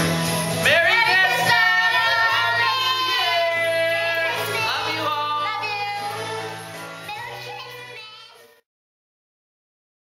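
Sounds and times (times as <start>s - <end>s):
person singing over music: 0.0s - 8.6s.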